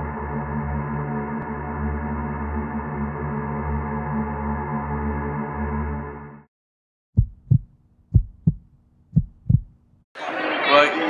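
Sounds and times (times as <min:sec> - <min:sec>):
heartbeat thumps: 0:07.1 - 0:09.9.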